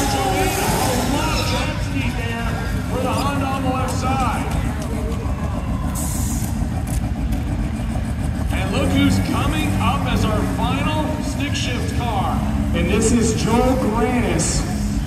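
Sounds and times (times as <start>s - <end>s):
race car engine rumbling: 0.0s - 15.0s
voices talking: 0.0s - 15.0s.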